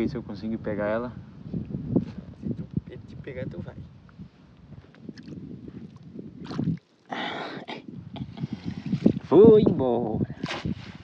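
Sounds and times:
water sloshing: 5.1 - 7.1.

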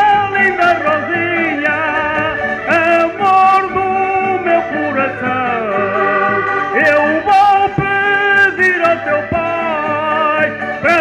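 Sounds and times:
accordions playing melody: 0.0 - 11.0
person singing long notes: 0.0 - 11.0
strummed guitars: 0.0 - 11.0.

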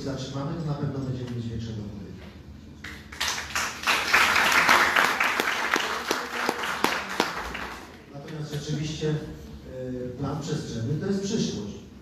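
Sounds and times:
audience applauding: 3.1 - 8.0.

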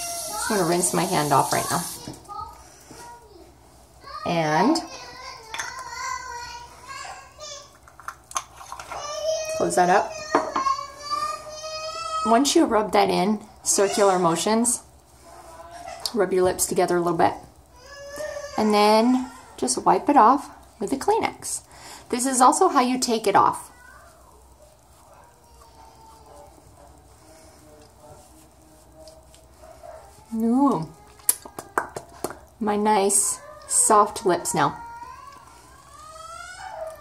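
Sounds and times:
faint wavering cries: 33.3 - 37.0
child wailing: 34.6 - 37.0.

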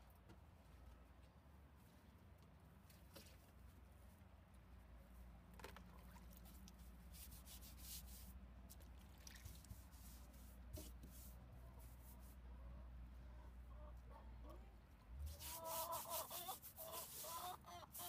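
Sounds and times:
scrubbing brush on wood: 6.4 - 8.3, 9.3 - 12.4, 15.2 - 18.0
brush stirred in water bucket: 9.1 - 11.3, 15.3 - 18.0.

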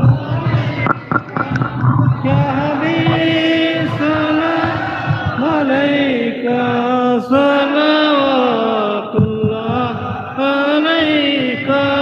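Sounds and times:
man chanting devotional verse: 0.0 - 12.0.

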